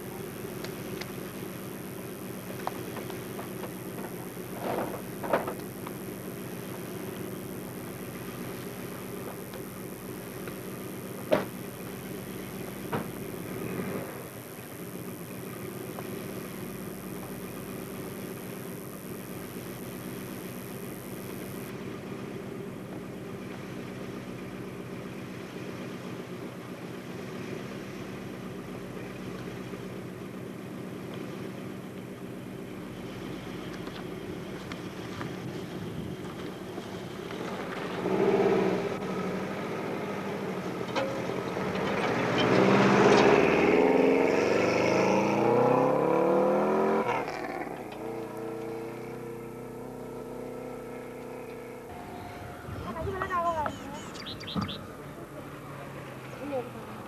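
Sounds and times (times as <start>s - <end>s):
rally car engine revving and accelerating: 12.4s - 14.4s, 34.9s - 52.0s.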